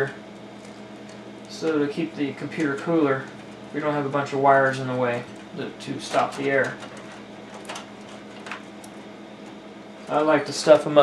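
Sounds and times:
cables clicking and rustling: 0.0 - 11.0
steady low hum: 0.0 - 11.0.

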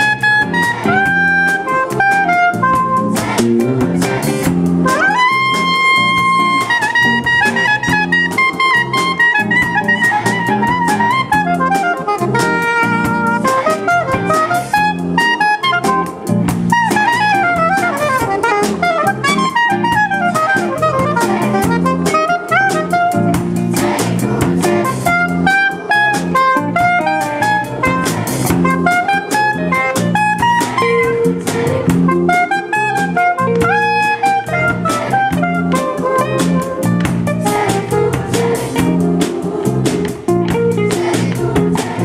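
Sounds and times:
soprano saxophone jazz solo: 0.0 - 3.7, 4.5 - 23.8, 24.5 - 41.8
drums: 0.0 - 42.0.

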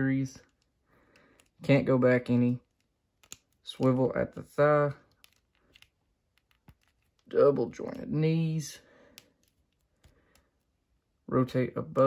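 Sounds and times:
plastic action figure joints clicking: 2.7 - 4.0.

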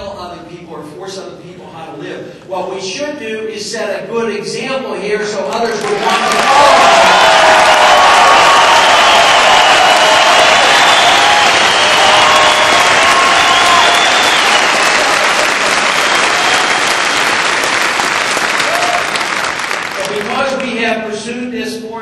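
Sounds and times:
audience applauding: 5.7 - 20.8
voices cheering: 5.8 - 20.4.

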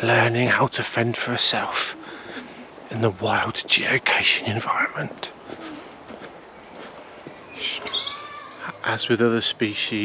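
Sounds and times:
bird chirping and whistling: 7.4 - 8.4.

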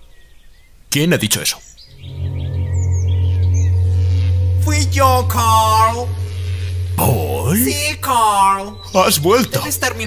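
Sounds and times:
bird chirps: 1.4 - 10.0
low droning music tone: 1.9 - 10.0.

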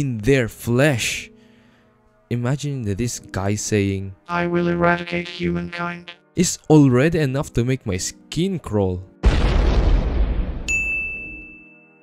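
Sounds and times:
explosion with low rumble: 9.2 - 10.7.

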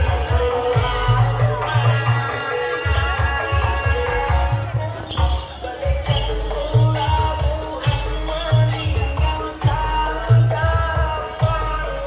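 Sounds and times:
deep drum beats: 0.0 - 12.0.

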